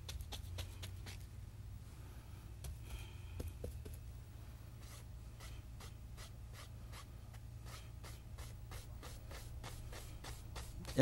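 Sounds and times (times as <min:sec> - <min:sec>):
paintbrush scratching on canvas: 0:04.8 - 0:11.0.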